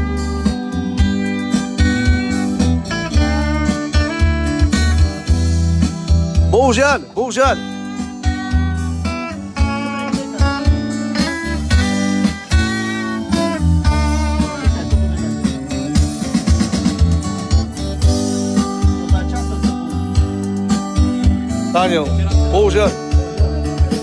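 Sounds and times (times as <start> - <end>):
bass guitar: 0.0 - 24.0
electric guitar melody: 0.0 - 24.0
steady drum beat: 0.0 - 24.0.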